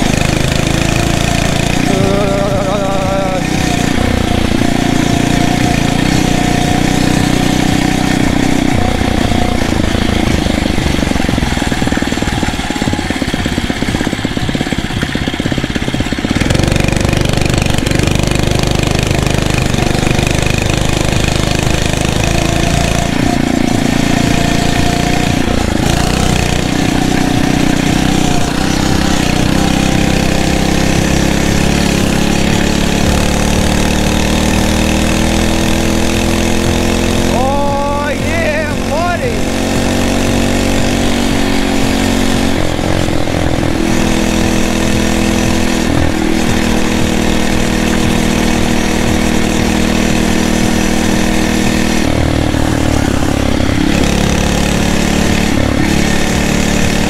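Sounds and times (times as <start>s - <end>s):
small motorbike engine running: 0.0s - 57.0s.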